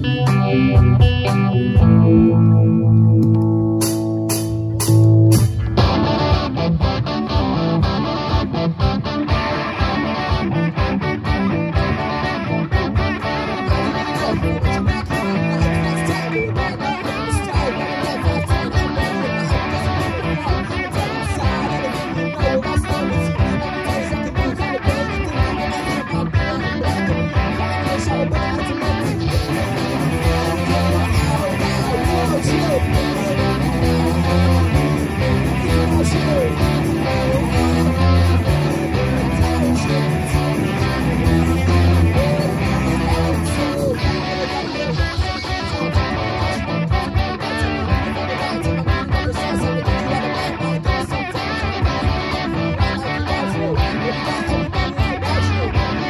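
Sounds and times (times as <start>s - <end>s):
live rock band playing: 0.0s - 56.0s
ringing guitar chords: 0.0s - 56.0s.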